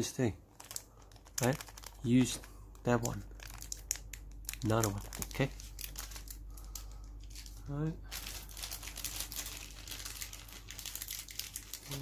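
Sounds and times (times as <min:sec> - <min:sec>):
plastic packaging crinkling: 0:00.4 - 0:12.0.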